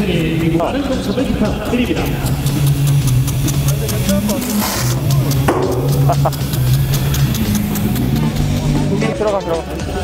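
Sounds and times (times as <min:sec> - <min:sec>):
ticks of rotating sprinkler heads: 0:00.0 - 0:09.4
sprinklers spraying water: 0:00.0 - 0:09.9
low hum: 0:01.9 - 0:08.9.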